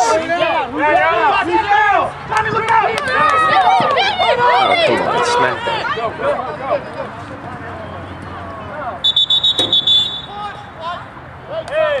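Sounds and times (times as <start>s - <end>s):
people shouting: 0.0s - 6.9s, 8.7s - 12.0s
referee whistle trilling: 9.0s - 10.7s.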